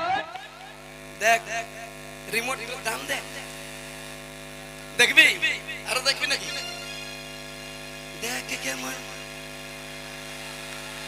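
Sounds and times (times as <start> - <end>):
electrical mains hum: 0.0 - 11.0.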